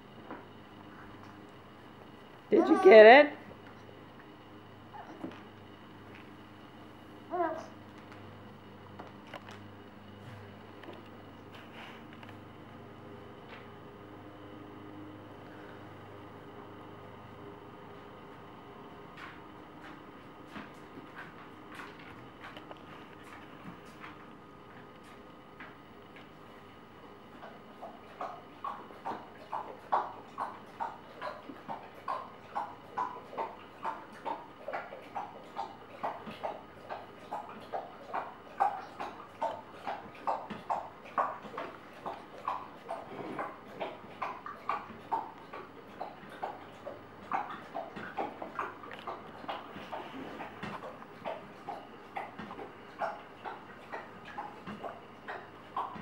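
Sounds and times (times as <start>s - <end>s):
dog lapping water: 27.4s - 56.0s.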